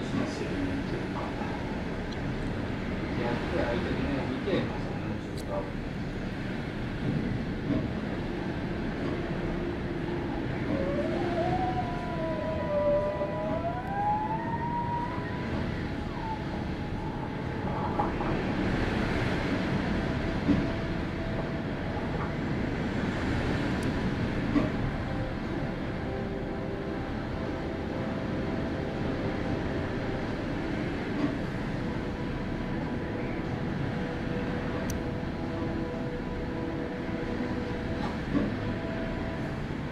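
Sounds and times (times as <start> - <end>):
strong wind gusts: 0.0 - 39.9
thin wavering tone: 9.6 - 18.0.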